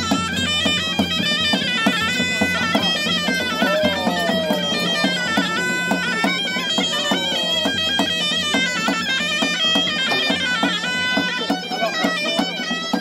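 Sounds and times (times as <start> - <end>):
drum beats: 0.0 - 13.0
snake charmer's pipe melody: 0.0 - 13.0.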